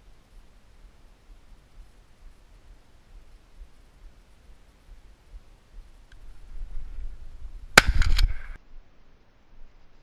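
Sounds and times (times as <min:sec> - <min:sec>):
sharp crack: 0:07.7 - 0:08.6
shotgun firing: 0:07.8 - 0:08.6.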